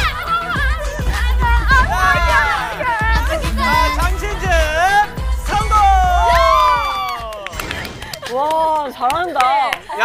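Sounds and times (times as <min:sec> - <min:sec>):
people shouting and cheering: 0:00.0 - 0:10.0.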